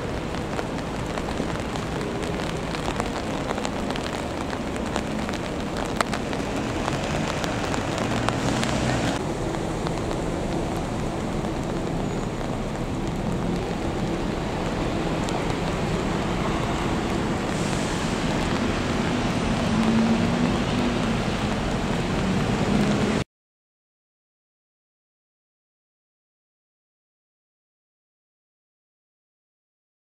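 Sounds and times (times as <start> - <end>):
city traffic: 0.0 - 23.2
steady rain: 0.0 - 23.3.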